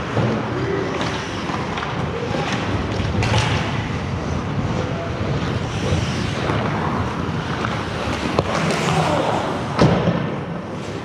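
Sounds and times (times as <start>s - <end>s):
skates on ice: 0.0s - 11.0s.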